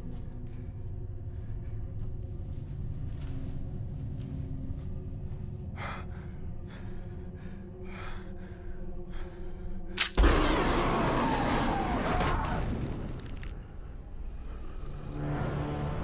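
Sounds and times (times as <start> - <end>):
low steady drone: 0.0 - 12.2, 13.4 - 16.0
sharp crack: 10.0 - 10.7.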